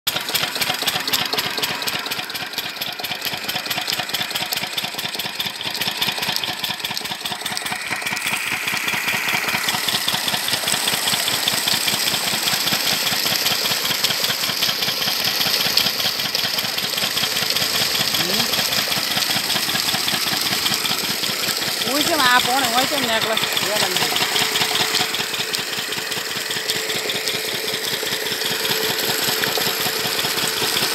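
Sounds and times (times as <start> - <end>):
diesel engine chugging: 0.1 - 30.9
water gushing from pipe: 0.1 - 30.9.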